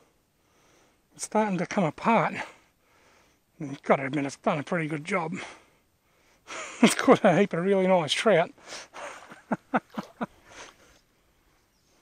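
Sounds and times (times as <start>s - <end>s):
man laughing: 6.5s - 7.5s, 8.9s - 10.4s.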